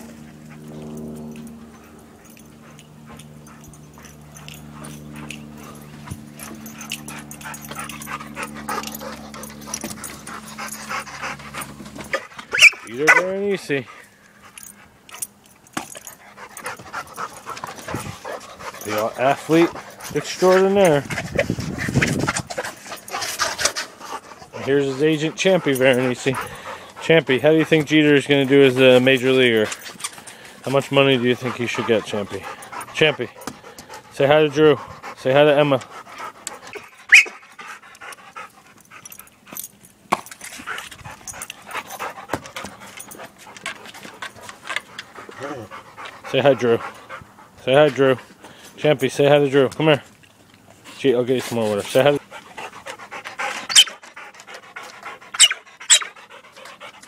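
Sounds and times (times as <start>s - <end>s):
collar tags jingling: 0.0s - 57.0s
dog panting: 0.0s - 57.0s.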